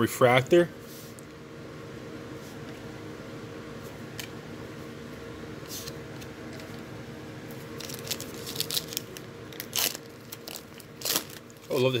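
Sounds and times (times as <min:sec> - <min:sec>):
steady low hum: 0:00.0 - 0:12.0
trading cards being handled: 0:07.6 - 0:12.0
foil wrapper crinkling and tearing: 0:07.8 - 0:12.0.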